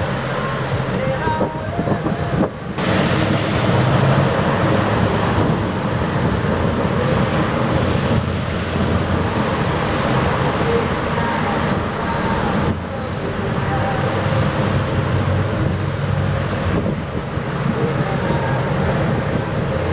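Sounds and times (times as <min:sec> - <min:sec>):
boat diesel engine running: 0:00.0 - 0:19.9
choppy churning water: 0:00.0 - 0:19.9
wind buffeting microphone: 0:00.0 - 0:19.9.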